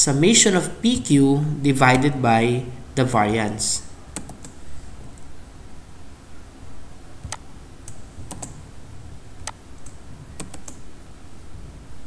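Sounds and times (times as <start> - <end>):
keyboard keystrokes: 4.2 - 4.6, 7.2 - 8.6, 9.4 - 10.9.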